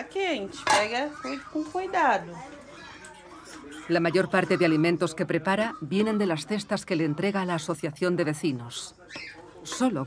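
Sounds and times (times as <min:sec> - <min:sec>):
pots dishes and cutlery clattering: 0:00.6 - 0:01.4.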